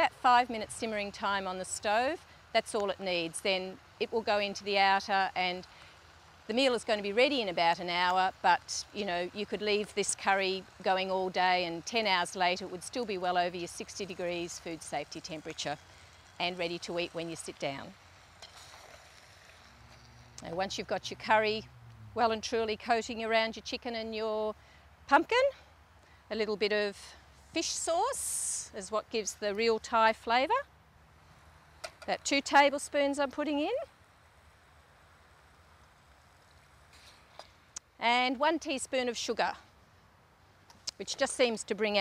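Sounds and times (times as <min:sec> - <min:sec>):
faint food sizzling in saucepan: 0:00.0 - 0:24.1, 0:31.1 - 0:39.3.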